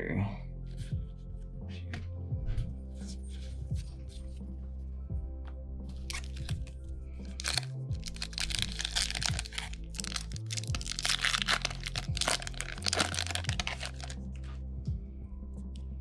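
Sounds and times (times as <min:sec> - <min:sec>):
background music: 0:00.0 - 0:16.0
foil wrapper crinkling: 0:06.0 - 0:06.6, 0:07.2 - 0:14.2.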